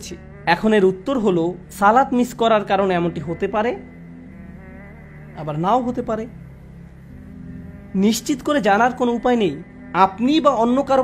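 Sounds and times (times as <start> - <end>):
person speaking: 0.0 - 4.0, 5.3 - 6.6, 7.8 - 11.0
low drone chord music: 0.0 - 11.0.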